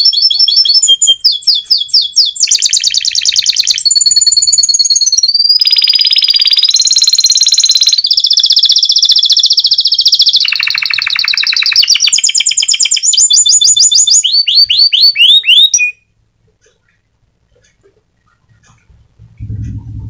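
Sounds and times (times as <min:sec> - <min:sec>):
canary singing trills: 0:00.0 - 0:20.0.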